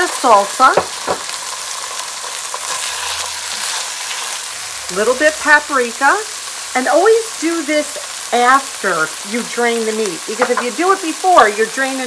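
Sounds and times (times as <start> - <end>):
meat sizzling in a skillet: 0.0 - 12.0.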